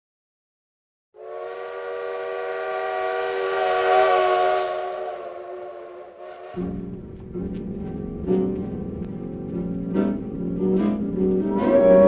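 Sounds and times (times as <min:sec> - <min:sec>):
train whistle chord: 0:01.2 - 0:09.0, 0:09.6 - 0:12.0.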